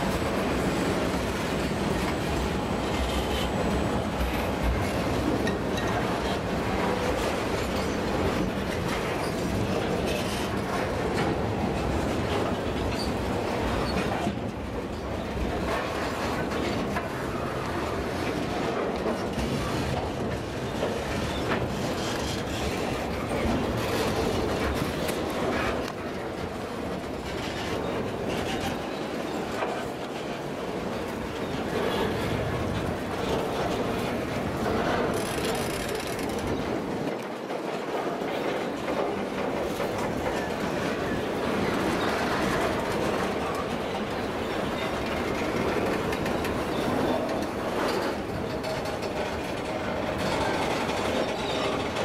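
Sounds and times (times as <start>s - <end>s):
freight train wagons rolling: 0.0s - 52.0s.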